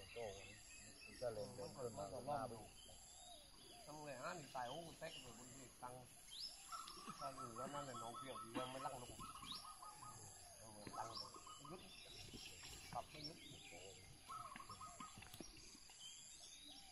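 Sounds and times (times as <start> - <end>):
bird rising chirp: 0.0 - 16.9
bird rapid trilled call: 3.0 - 15.9.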